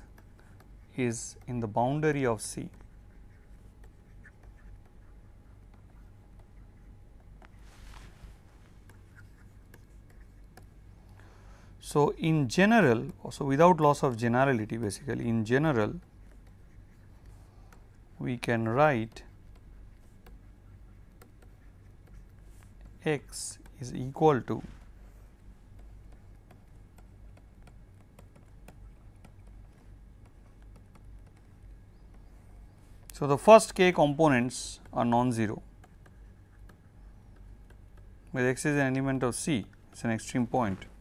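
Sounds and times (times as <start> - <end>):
stylus scratching on tablet screen: 0.0 - 11.4, 12.0 - 41.0
low steady hum: 0.0 - 41.0.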